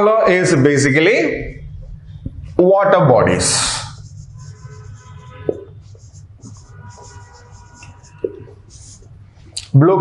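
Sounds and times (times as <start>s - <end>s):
marker scratching on whiteboard: 3.6s - 9.2s.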